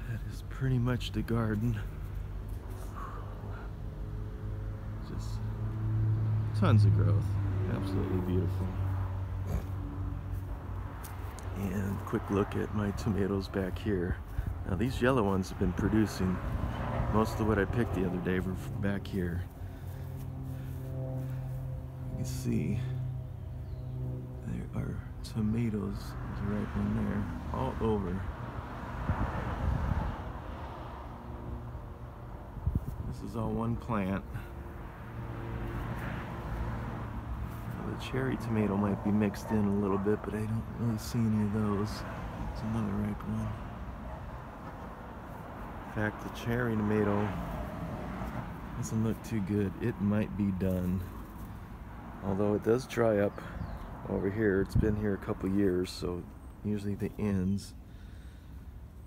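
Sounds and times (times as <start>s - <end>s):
low uneven outdoor rumble: 0.0s - 28.6s.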